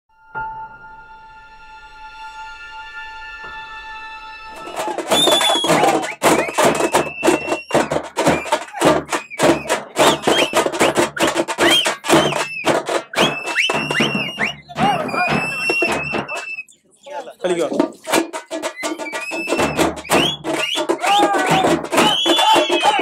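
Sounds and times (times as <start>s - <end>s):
shrill whistle-like tones: 0.2s - 17.2s, 18.0s - 23.0s
frame drums beaten fast: 4.6s - 16.6s, 17.4s - 23.0s.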